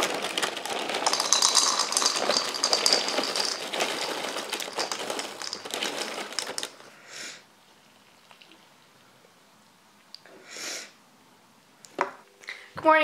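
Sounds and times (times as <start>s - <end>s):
cereal pouring into ceramic bowl: 0.0s - 6.8s.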